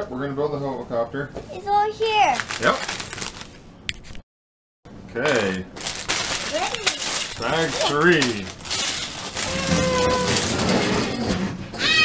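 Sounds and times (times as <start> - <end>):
child's voice: 1.4 - 2.5, 6.4 - 7.2
plastic bag crinkling: 2.3 - 3.6, 5.2 - 10.7.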